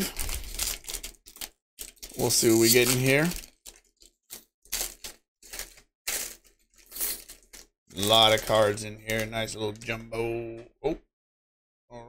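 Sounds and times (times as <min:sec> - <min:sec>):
foil wrapper tearing and crinkling: 0:00.0 - 0:09.4.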